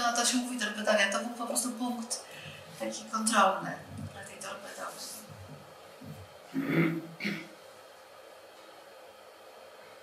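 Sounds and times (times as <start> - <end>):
recording hiss: 0.0 - 10.0.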